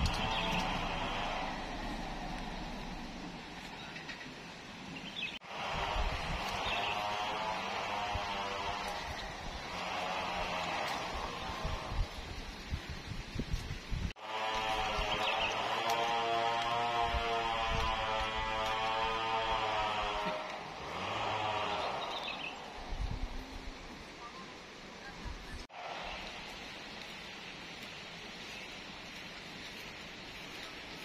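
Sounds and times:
engine running: 0:00.0 - 0:03.8, 0:05.4 - 0:12.2, 0:14.2 - 0:23.4.

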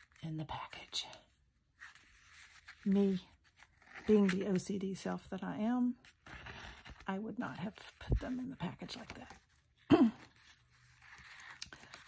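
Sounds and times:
paper sheets rustling: 0:01.8 - 0:05.1.

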